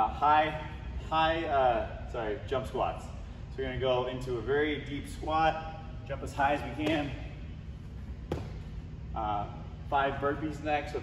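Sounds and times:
low steady hum: 0:00.0 - 0:11.0
feet landing on rubber floor: 0:08.2 - 0:08.8.

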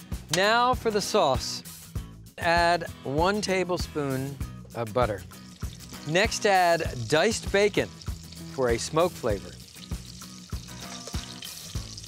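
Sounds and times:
background music with steady beat: 0:00.0 - 0:12.0
bacon sizzling in butter: 0:05.2 - 0:12.0.

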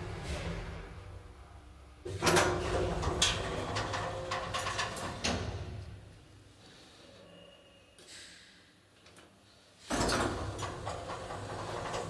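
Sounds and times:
elevator clicks and rattles: 0:02.1 - 0:05.6, 0:09.9 - 0:12.0
elevator machine hum: 0:10.4 - 0:12.0.

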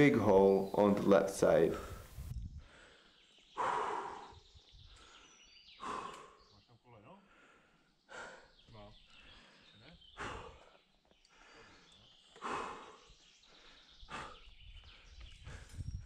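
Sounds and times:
forceful exhalations: 0:01.7 - 0:04.4, 0:05.8 - 0:06.5, 0:11.3 - 0:14.4.

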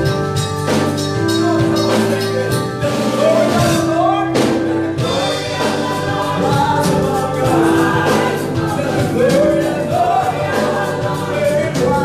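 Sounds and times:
drums: 0:00.0 - 0:12.0
keyboard: 0:00.0 - 0:12.0
man singing lead: 0:01.2 - 0:12.0
backing singers: 0:02.8 - 0:12.0.

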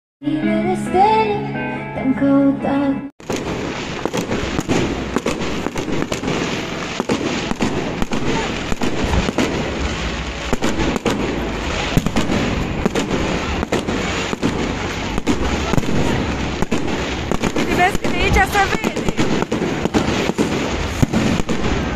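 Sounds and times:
fireworks crackling and banging: 0:03.2 - 0:21.9.

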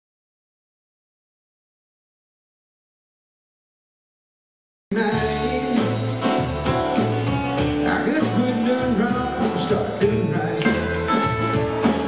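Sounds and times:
drum kit: 0:04.9 - 0:12.0
amplified electric guitars: 0:05.0 - 0:12.0
live band playing: 0:05.0 - 0:12.0.

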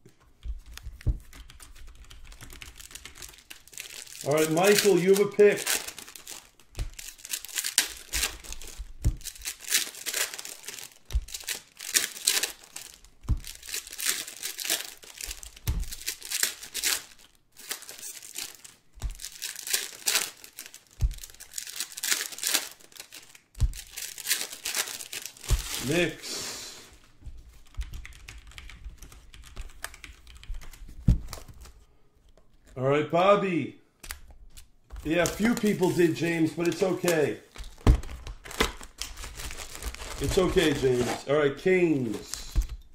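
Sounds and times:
plastic wrappers crinkling and tearing: 0:00.4 - 0:31.8, 0:34.1 - 0:42.9.

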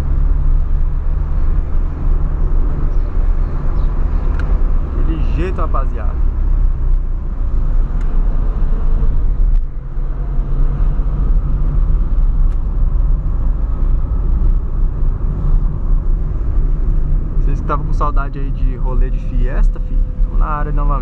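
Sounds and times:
car engine droning: 0:00.0 - 0:21.0
road rumble: 0:00.0 - 0:21.0.

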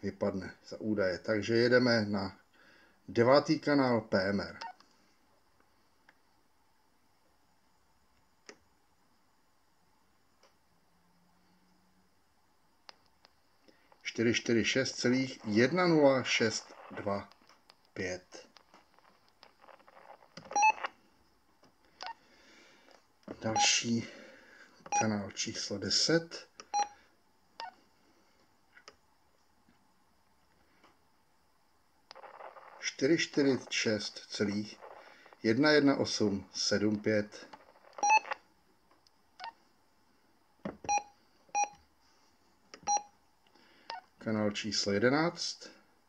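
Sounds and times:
two-way radio key beeps: 0:20.5 - 0:20.8, 0:38.0 - 0:38.3
two-step electronic radio beep: 0:38.0 - 0:38.3.

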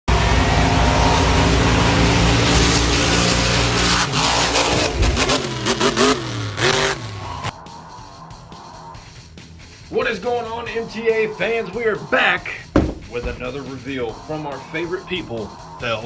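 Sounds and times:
monster truck engine revving: 0:00.1 - 0:07.8.

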